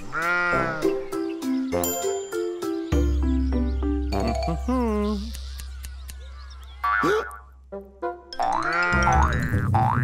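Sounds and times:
springy boing sounds: 0:08.4 - 0:10.0.

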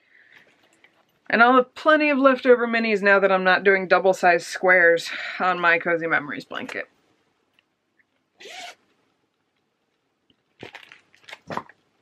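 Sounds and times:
yarn rustling and crinkling: 0:10.3 - 0:12.0.

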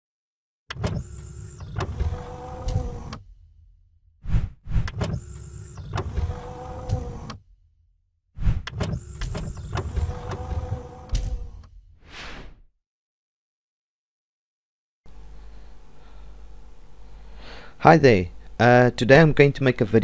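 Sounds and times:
mechanical clicks: 0:00.7 - 0:03.2, 0:04.8 - 0:07.4, 0:08.6 - 0:11.7
mechanical whirring: 0:00.7 - 0:03.6, 0:04.3 - 0:07.5, 0:08.4 - 0:11.8.

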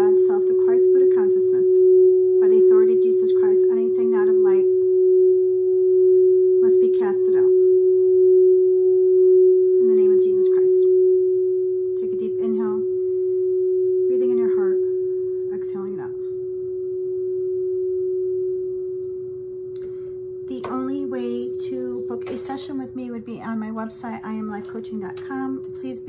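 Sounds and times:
steady meditation tone: 0:00.0 - 0:26.0.

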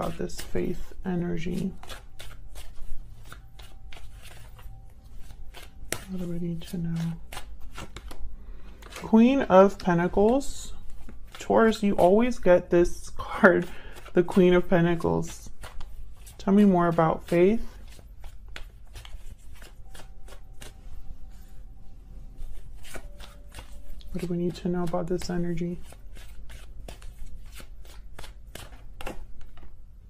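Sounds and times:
cards being shuffled: 0:00.0 - 0:12.5, 0:13.4 - 0:21.6, 0:22.4 - 0:29.9.

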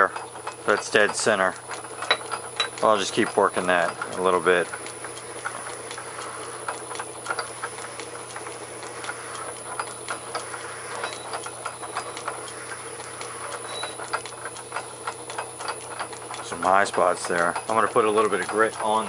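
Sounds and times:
gritty grinding ticks and scratches: 0:00.0 - 0:19.0
lathe machine hum: 0:00.0 - 0:19.0.

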